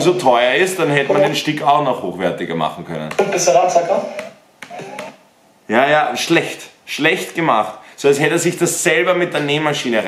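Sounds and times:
man talking: 0.0 - 4.0, 5.7 - 10.0.

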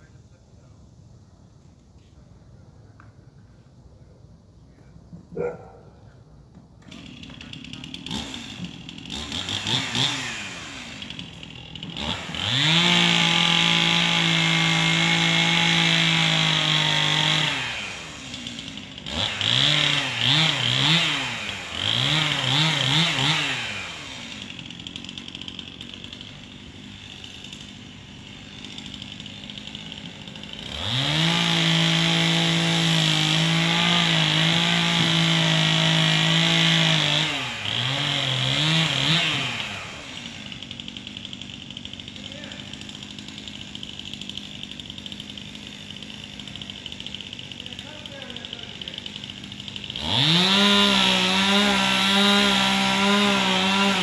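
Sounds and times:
chainsaw revving and idling: 6.8 - 54.0.

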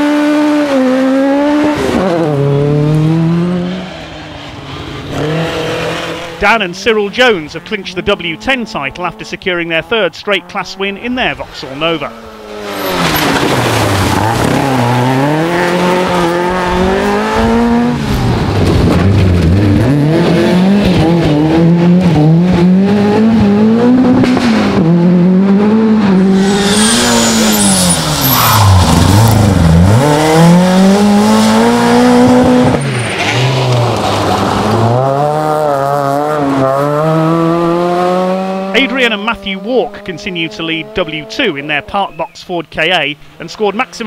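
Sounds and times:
rally car engine revving: 0.0 - 42.1.

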